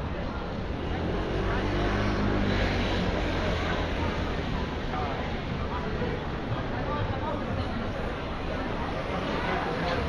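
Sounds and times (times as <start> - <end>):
voices of passers-by: 0.0 - 10.0.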